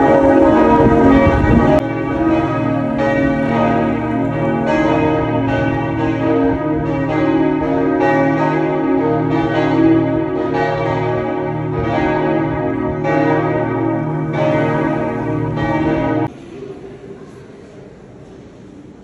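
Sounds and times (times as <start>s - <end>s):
church bells ringing: 0.0s - 16.3s.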